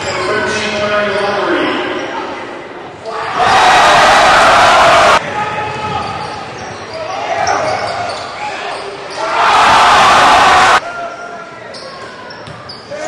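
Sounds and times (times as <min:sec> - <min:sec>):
crowd cheering loudly: 0:03.2 - 0:05.2, 0:09.2 - 0:10.9.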